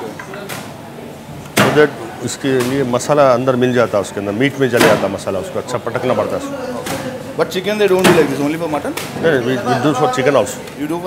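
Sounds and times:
man speaking: 1.7 - 11.0.

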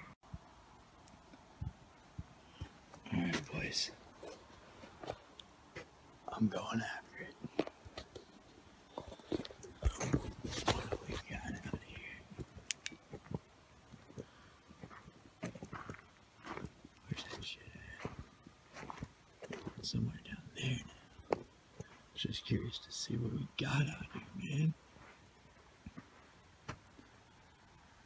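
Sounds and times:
man whispering: 3.0 - 4.4, 6.2 - 7.6, 9.1 - 12.4, 17.0 - 18.2, 19.7 - 21.3, 22.1 - 24.8.

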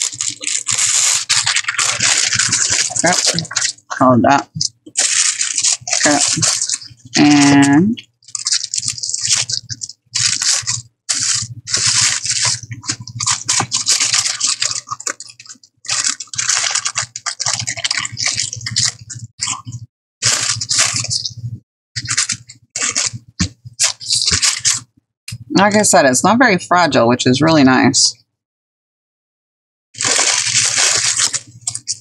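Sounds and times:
rice paper rustling and crinkling: 0.0 - 7.6, 8.2 - 21.4, 22.0 - 24.9, 30.0 - 32.0.

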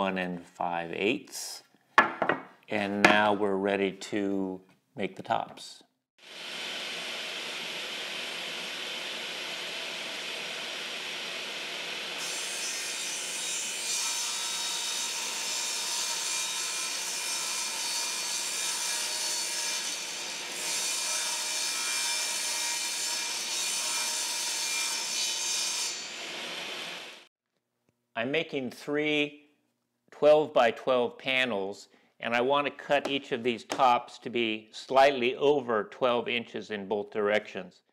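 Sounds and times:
table saw running: 6.2 - 16.2
saw blade cutting plywood: 6.2 - 27.1.

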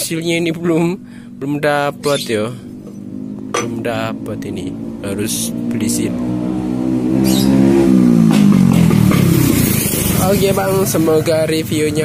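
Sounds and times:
vehicle engine running loud: 0.0 - 12.0.

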